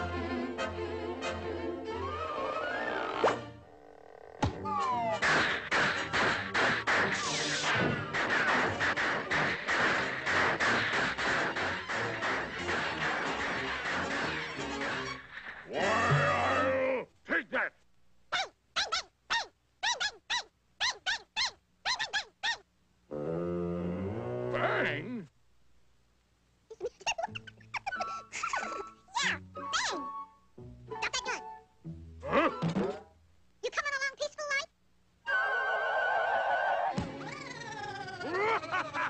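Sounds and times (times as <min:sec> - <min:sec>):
cartoon chipmunks chattering: 0:18.4 - 0:22.6, 0:37.1 - 0:38.8
high-pitched cartoon chattering: 0:26.7 - 0:29.9, 0:37.1 - 0:38.8.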